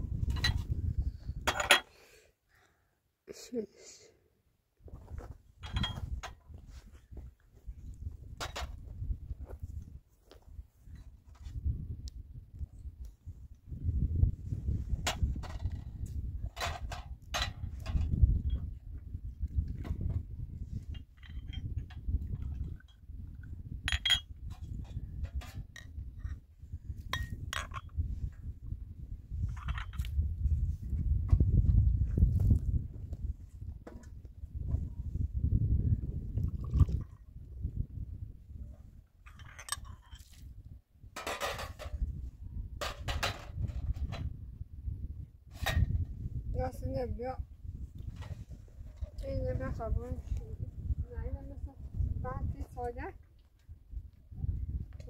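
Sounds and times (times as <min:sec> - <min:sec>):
glasses and metal tray clinking: 0:23.9 - 0:24.3.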